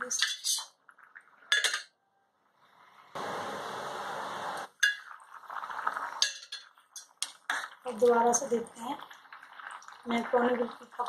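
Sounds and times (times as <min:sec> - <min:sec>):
water boiling in a pot: 0:00.0 - 0:01.8, 0:02.5 - 0:11.0
metal spoon clinking on pot: 0:01.5 - 0:01.9, 0:06.2 - 0:07.6.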